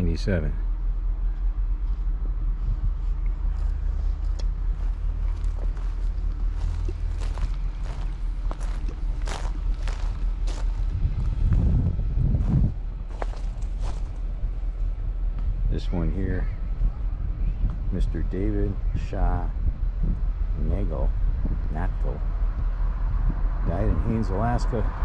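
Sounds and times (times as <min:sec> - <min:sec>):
steady low rumble: 0:00.0 - 0:25.0
footsteps on dirt path: 0:01.8 - 0:15.6.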